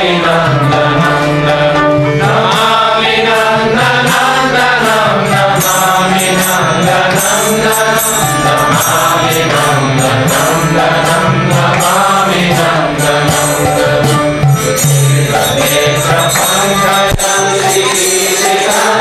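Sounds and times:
person singing a mantra: 0:00.0 - 0:14.1, 0:14.8 - 0:19.0
percussion beat: 0:00.0 - 0:19.0.

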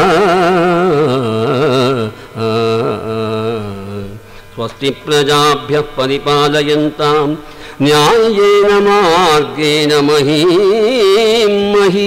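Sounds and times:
man chanting in held notes: 0:00.0 - 0:12.0.

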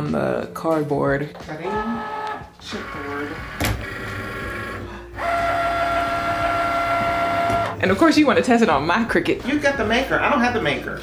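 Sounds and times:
cutting machine motor whine: 0:02.7 - 0:07.8.

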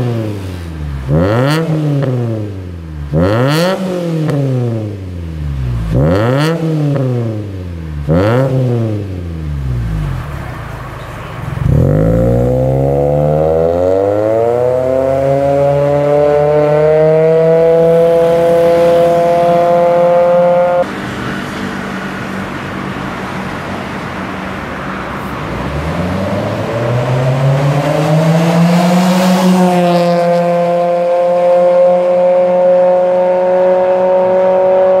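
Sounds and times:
car exhaust revving: 0:00.0 - 0:21.0, 0:25.5 - 0:35.0
car engine droning: 0:00.0 - 0:35.0.

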